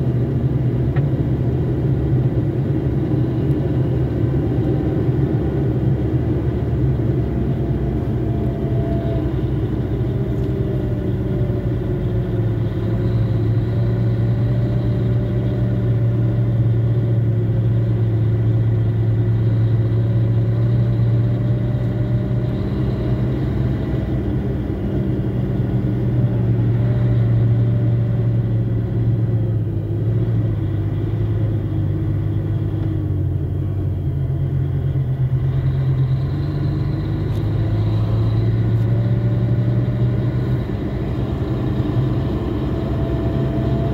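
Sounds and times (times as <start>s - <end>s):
vehicle engine running: 0.0s - 43.9s.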